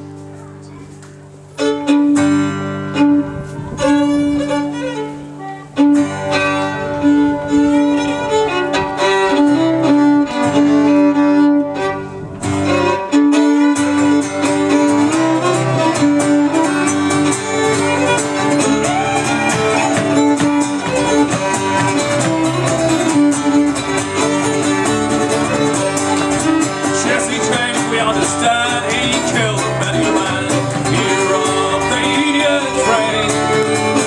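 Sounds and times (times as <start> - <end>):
fiddle melody: 0.0 - 34.0
strummed acoustic guitar: 0.0 - 34.0.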